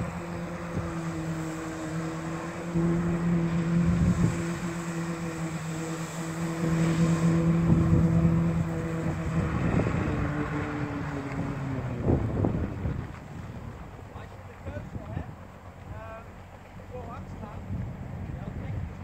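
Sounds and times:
water jets hissing: 0.0 - 12.1
jet ski engine running: 0.0 - 19.0.

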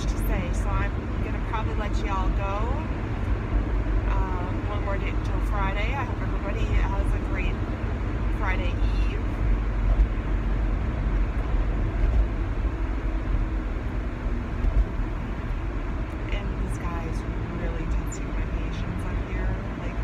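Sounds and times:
road and engine rumble in car: 0.0 - 20.0.

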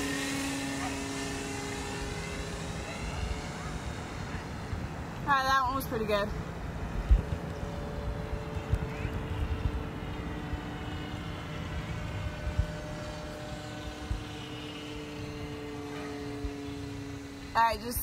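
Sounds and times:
model plane motor droning overhead: 0.0 - 18.0.

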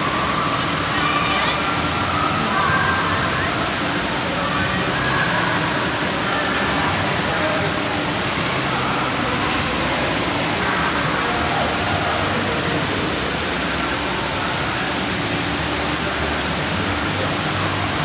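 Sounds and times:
water splashing from fountains: 0.0 - 18.0.

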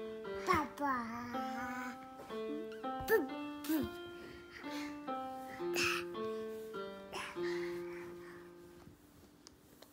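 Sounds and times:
electronic keyboard melody: 0.0 - 9.3.

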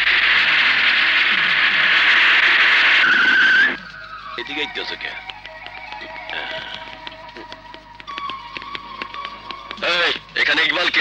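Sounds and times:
tyres screeching in a skid: 1.8 - 3.9.

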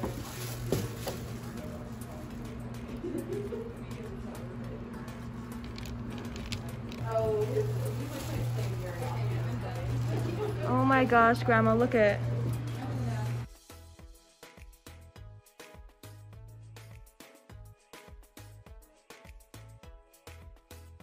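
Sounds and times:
steady low hum: 0.0 - 13.5.

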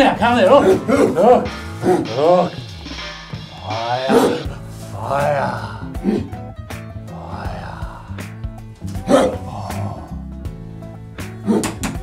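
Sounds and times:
background music: 0.0 - 12.0
man making dog-like bark: 0.4 - 2.5, 3.8 - 6.3, 9.0 - 10.0.

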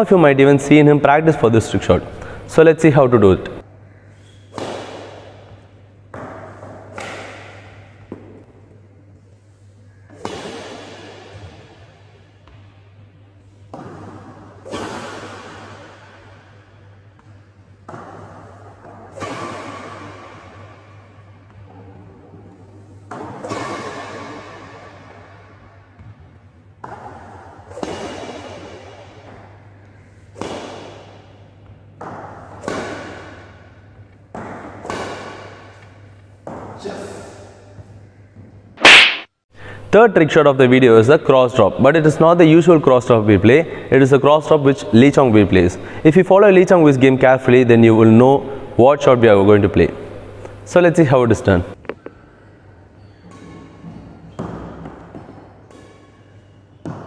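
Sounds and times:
steady low hum: 0.0 - 53.8
racket hitting shuttlecock echoing: 4.0 - 9.1, 10.0 - 13.0, 13.7 - 36.8, 38.8 - 39.3, 54.3 - 57.0.

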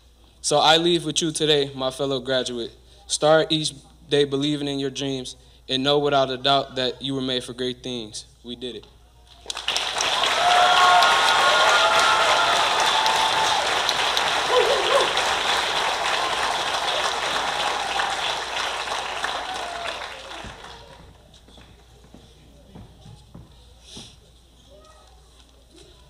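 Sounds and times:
audience applauding: 9.4 - 21.3
voices cheering: 9.9 - 21.1.

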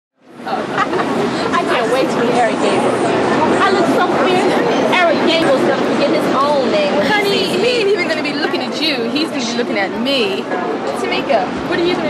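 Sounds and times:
women chattering: 0.3 - 12.0.

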